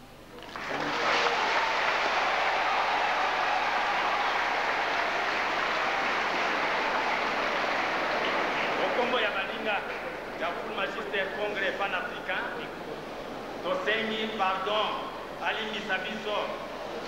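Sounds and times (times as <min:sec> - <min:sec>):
congregation applauding: 0:00.3 - 0:10.7.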